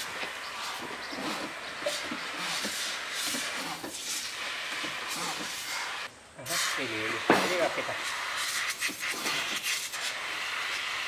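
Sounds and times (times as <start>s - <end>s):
sprayer hissing: 0.0s - 11.0s.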